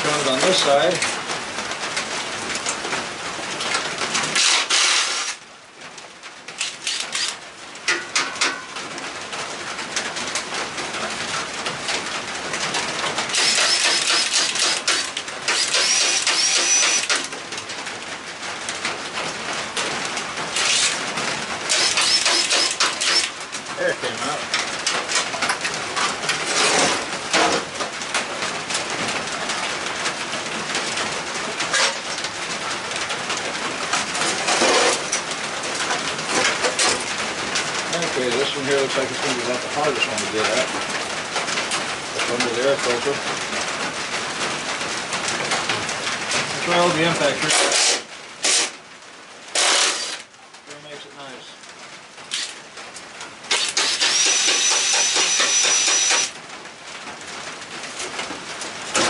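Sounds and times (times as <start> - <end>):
power tool whirring: 4.4 - 5.4, 6.6 - 7.4, 13.3 - 17.3, 20.6 - 21.0, 21.7 - 23.4, 47.5 - 48.8, 49.5 - 50.2, 53.5 - 56.4.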